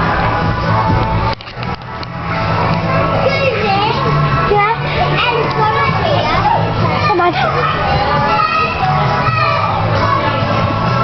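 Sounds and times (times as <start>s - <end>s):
loud background music: 0.0s - 11.0s
children shouting and squealing: 2.8s - 11.0s.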